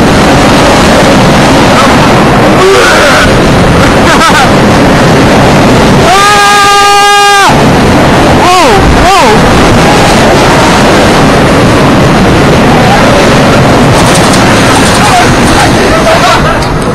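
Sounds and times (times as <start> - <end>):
wind buffeting microphone: 0.0 - 16.9
rider screaming: 5.9 - 7.7
person whooping: 6.0 - 7.6.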